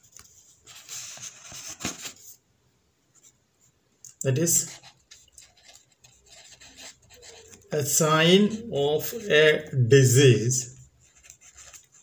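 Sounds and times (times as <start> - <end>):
marker pen scratching on paper: 4.5 - 9.6, 10.8 - 12.0.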